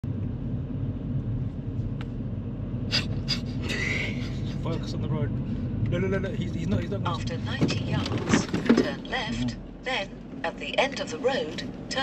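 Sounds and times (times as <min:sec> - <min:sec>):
car rumble from inside cabin: 0:00.0 - 0:12.0
person laughing: 0:03.2 - 0:04.9.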